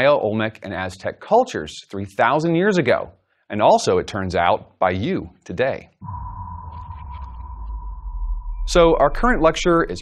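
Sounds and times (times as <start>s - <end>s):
deep rumble: 6.0s - 10.0s
steady high tone: 6.0s - 10.0s.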